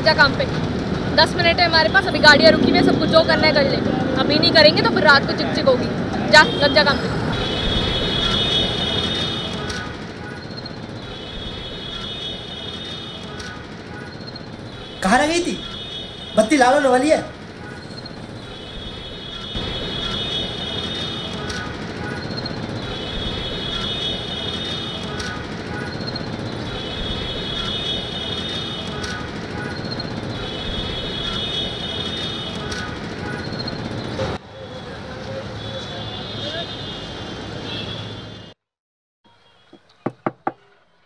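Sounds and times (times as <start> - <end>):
traffic engines rumbling: 0.0 - 38.6.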